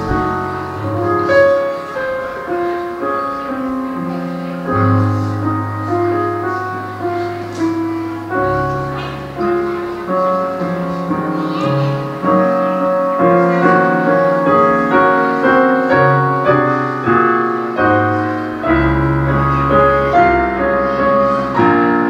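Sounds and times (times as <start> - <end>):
deep bass piano note: 0.0 - 12.2
slow piano chords: 0.0 - 22.0.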